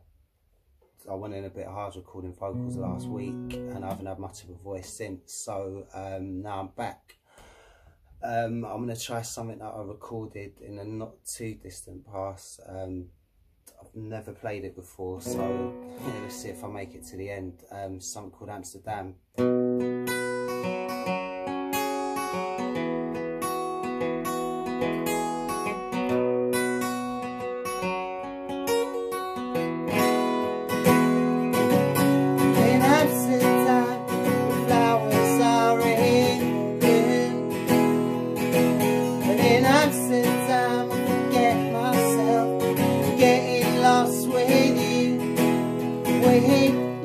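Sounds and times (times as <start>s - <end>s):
acoustic guitar picking chords: 1.2s - 5.2s, 15.2s - 17.4s, 19.3s - 47.0s
man singing: 2.4s - 6.9s, 15.1s - 17.0s, 31.8s - 47.0s.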